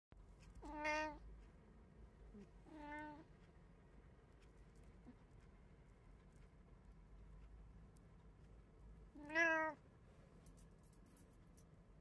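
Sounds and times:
cat meowing: 0.6s - 1.2s, 2.6s - 3.3s, 9.2s - 9.8s.

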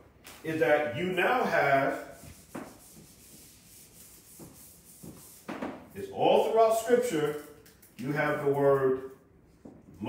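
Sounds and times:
eraser rubbing on whiteboard: 1.4s - 6.0s.

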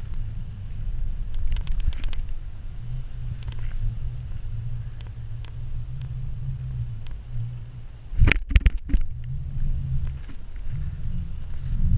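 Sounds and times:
bike knocking and rattling: 0.0s - 11.9s
bike tyres rumbling on tarmac: 0.0s - 11.9s
wind on microphone: 0.0s - 11.9s.

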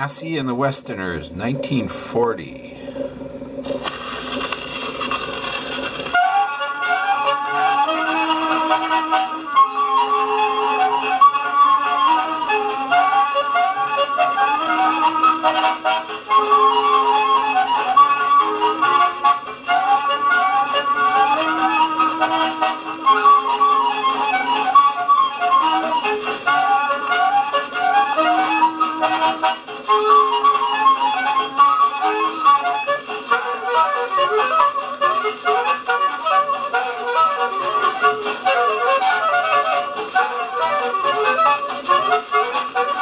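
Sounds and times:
record surface hiss: 0.0s - 43.0s
polka band tune: 3.6s - 43.0s.

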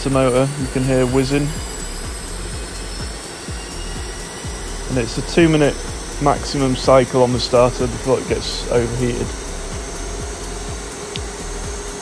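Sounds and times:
jet engine starter whine: 0.0s - 12.0s.

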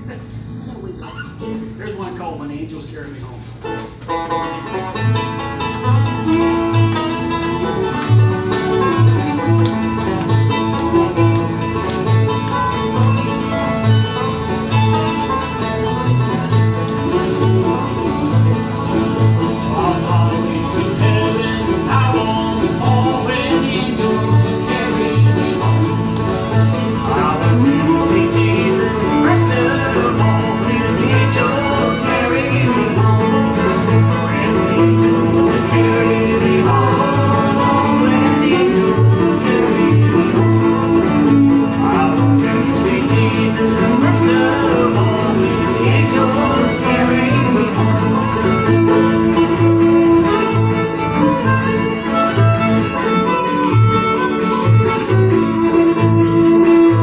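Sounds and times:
acoustic guitars strumming: 0.0s - 57.0s
fiddle sliding lines: 4.2s - 57.0s.

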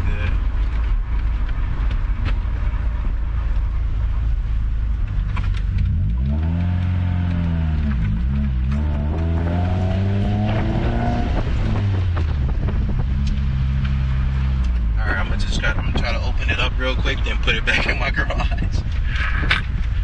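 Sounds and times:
car engine revving: 0.0s - 20.0s
road rumble: 0.0s - 20.0s.

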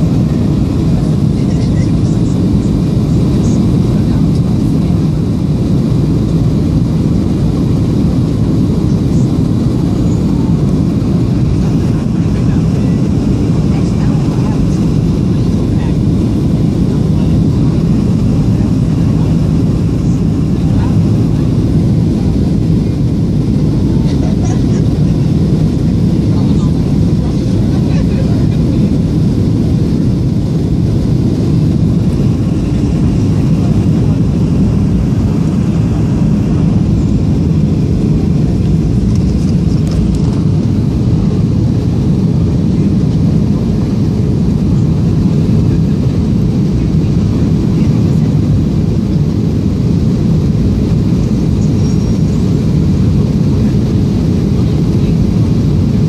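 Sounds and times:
airflow over airframe: 0.0s - 56.0s
jet engines droning: 0.0s - 56.0s.

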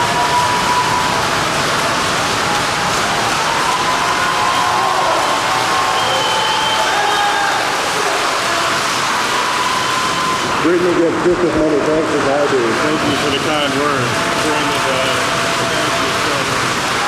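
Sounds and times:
crowd clapping: 0.0s - 17.0s.

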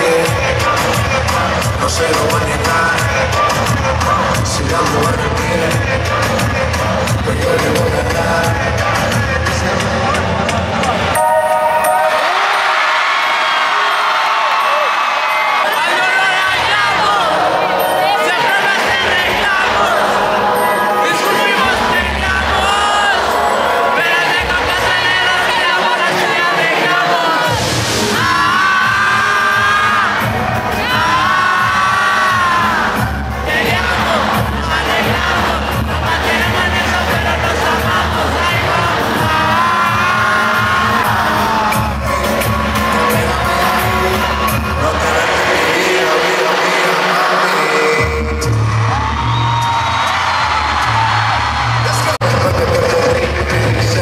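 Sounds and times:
heavy bass beat: 0.0s - 11.2s, 27.4s - 46.1s
crowd singing along and cheering: 0.0s - 54.0s
reggaeton sung vocals: 0.0s - 54.0s.

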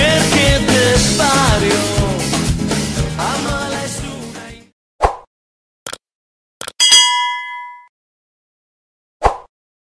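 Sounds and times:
metallic ding: 6.8s - 7.9s.

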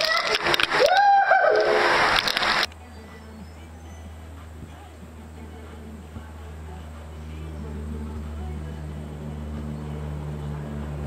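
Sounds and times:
person yelling: 0.0s - 1.8s
low hum: 0.1s - 11.0s.

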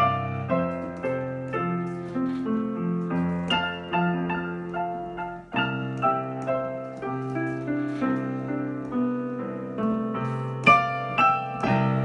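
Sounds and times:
solo piano piece: 0.0s - 12.0s.

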